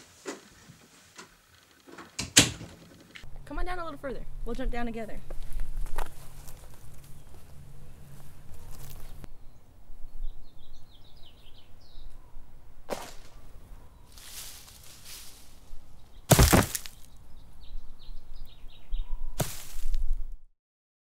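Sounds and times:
rustle: 0:05.2 - 0:09.3, 0:14.1 - 0:17.1, 0:19.4 - 0:20.2
small birds chirping: 0:05.3 - 0:12.5, 0:13.3 - 0:19.4
person falling onto ground: 0:12.9 - 0:13.4, 0:16.3 - 0:17.1, 0:19.4 - 0:20.0.

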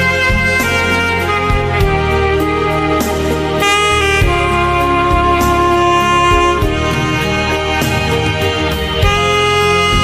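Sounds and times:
backing track with bass line: 0:00.0 - 0:10.0
saxophone melody: 0:00.0 - 0:10.0.

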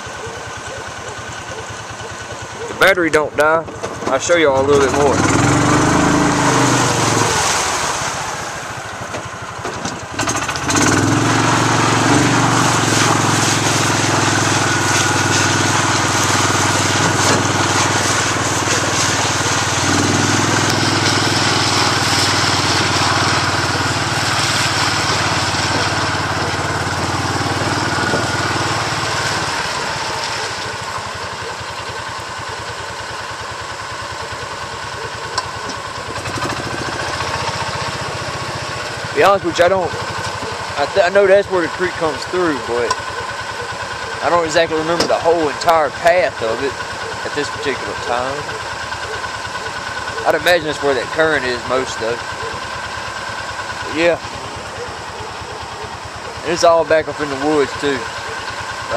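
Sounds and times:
small vehicle engine running: 0:00.0 - 0:58.9
rushing hiss of water: 0:06.4 - 0:08.8.

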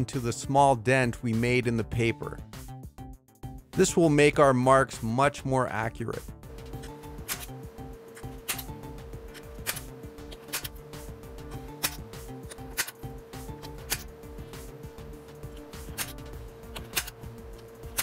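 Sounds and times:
background music: 0:00.0 - 0:18.0.

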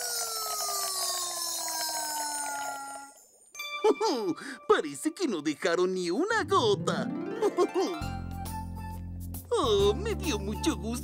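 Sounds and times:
sparkly high shimmer: 0:03.0 - 0:04.9.

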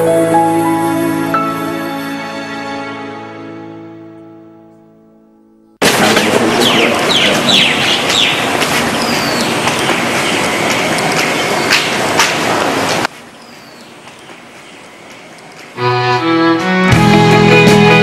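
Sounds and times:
birds chirping: 0:06.1 - 0:15.8.

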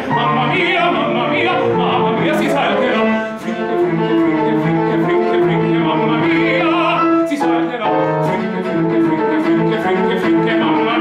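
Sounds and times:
cello playing: 0:00.0 - 0:11.0
piano playing: 0:00.0 - 0:11.0.

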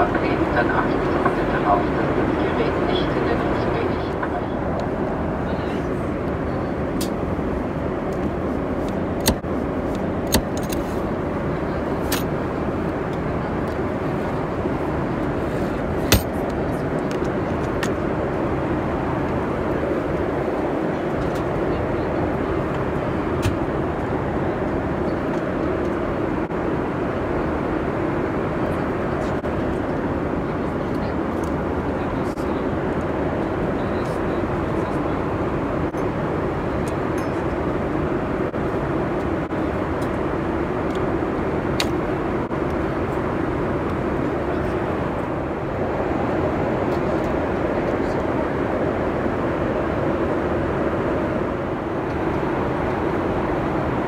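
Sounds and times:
airliner cabin roar: 0:00.0 - 0:54.0.

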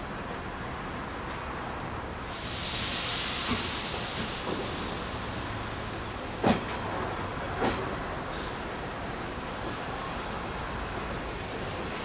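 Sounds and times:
low train rumble: 0:00.0 - 0:12.0
train hissing: 0:02.2 - 0:12.0
train wheels clunking over rail joint: 0:03.4 - 0:05.1, 0:06.2 - 0:08.6.

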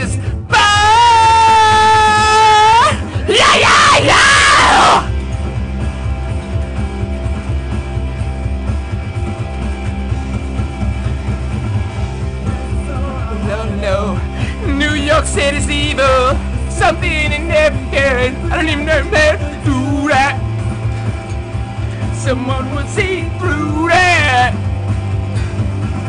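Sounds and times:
man yelling: 0:00.0 - 0:05.1
person singing: 0:00.0 - 0:05.1, 0:12.7 - 0:20.5, 0:22.0 - 0:24.6
rock song with steady beat: 0:00.0 - 0:26.0.

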